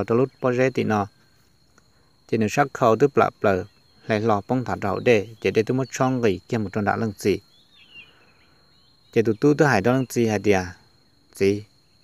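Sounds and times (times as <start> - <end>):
bird chirps: 0.0 - 12.0
person speaking: 2.3 - 7.4.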